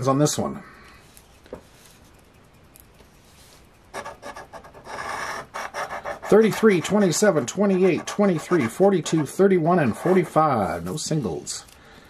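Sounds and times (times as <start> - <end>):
coin scraping lottery ticket: 3.9 - 11.0.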